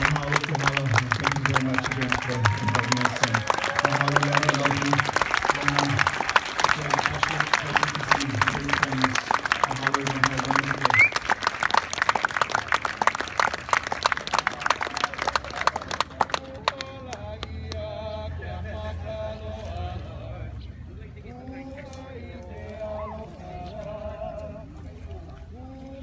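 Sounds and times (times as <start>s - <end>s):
low voice chanting: 0.0s - 11.0s, 14.4s - 26.0s
audience applause: 0.0s - 17.2s.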